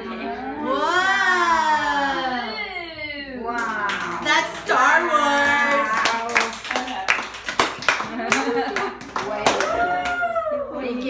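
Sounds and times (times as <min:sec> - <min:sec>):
people clapping: 0:03.6 - 0:10.6.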